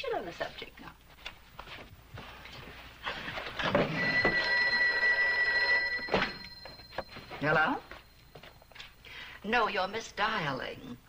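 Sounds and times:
telephone bell ringing: 3.6 - 8.9.

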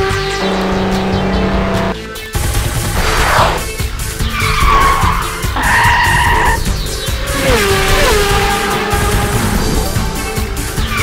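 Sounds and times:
cartoon tyres squealing: 3.0 - 8.6.

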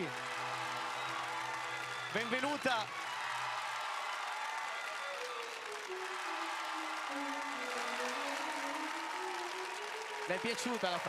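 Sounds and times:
audience applauding: 0.0 - 11.0
slow melody of long notes: 5.0 - 11.0.

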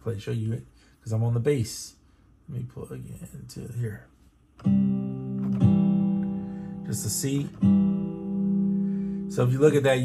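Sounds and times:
acoustic guitar strummed chord: 4.6 - 9.6.

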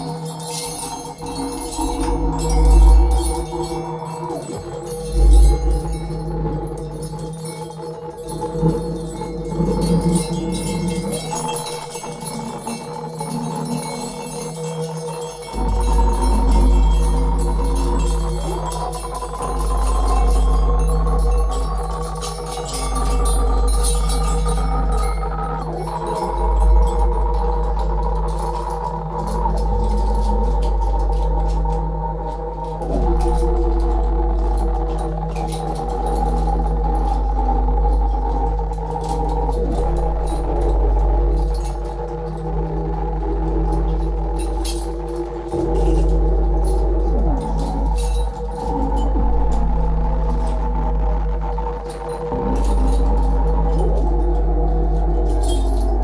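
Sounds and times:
deep electronic drone: 0.0 - 56.0.

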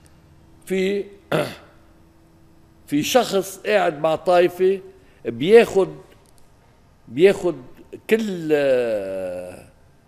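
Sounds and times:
faint room hum: 0.0 - 10.0
man speaking: 0.6 - 1.7, 2.8 - 6.2, 7.1 - 9.7
man clearing throat: 1.3 - 1.8.

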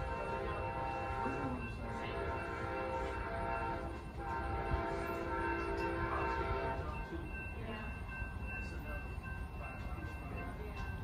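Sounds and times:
distant train air horn blasts: 0.0 - 7.0
low train rumble: 0.0 - 11.0.

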